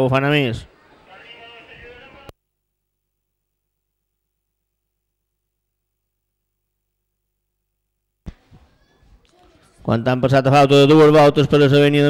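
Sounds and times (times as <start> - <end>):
faint background noise: 0.0 - 2.4, 8.3 - 12.0.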